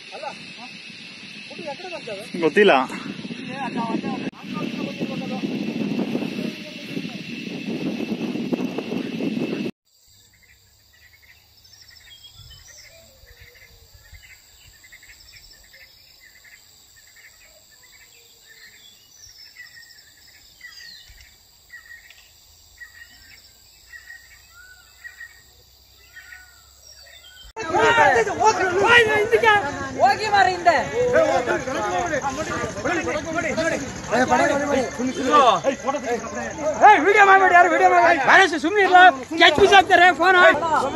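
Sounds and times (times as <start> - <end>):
noisy rush: 0.0 - 9.7
voices: 0.0 - 9.7, 21.0 - 40.9
insect hum: 0.0 - 40.9
bird chirping: 8.6 - 27.6.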